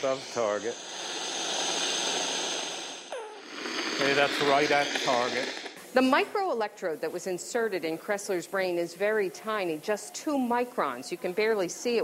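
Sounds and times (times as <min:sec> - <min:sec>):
crackling hiss of neuron firing: 0:00.0 - 0:12.0.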